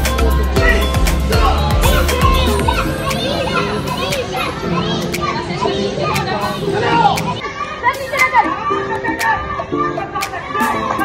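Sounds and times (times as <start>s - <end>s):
children calling and shouting: 0.0s - 11.0s.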